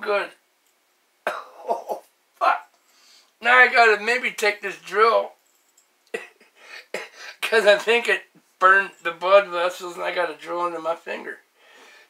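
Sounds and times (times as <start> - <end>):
man coughing: 1.3 - 2.1, 6.1 - 7.4.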